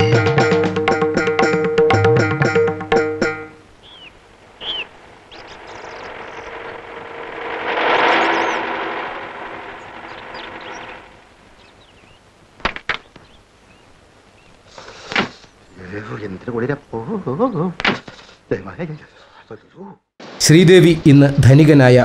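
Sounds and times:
birds chirping: 3.7 - 14.6
car passing: 4.8 - 11.6.

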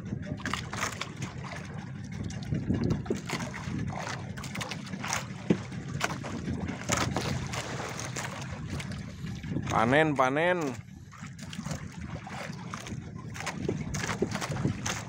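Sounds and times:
boat engine running: 0.0 - 15.0
knocks and splashes: 0.0 - 15.0
water sloshing against hull: 0.0 - 15.0.

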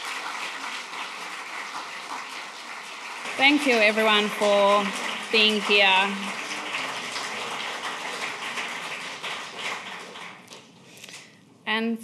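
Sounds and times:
audience applauding: 0.0 - 10.8.

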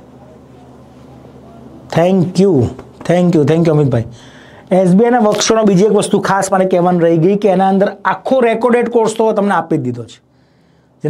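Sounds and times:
man's voice: 1.9 - 10.2.

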